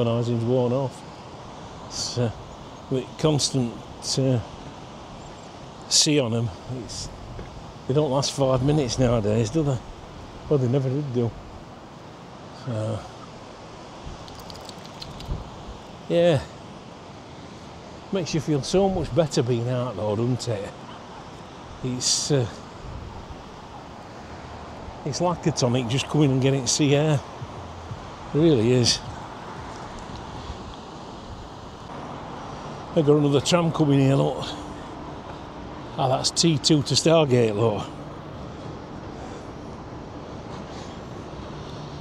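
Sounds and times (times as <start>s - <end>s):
road traffic passing: 0.0s - 42.0s
wind on microphone: 14.0s - 15.8s
faint light ticks: 14.2s - 15.4s.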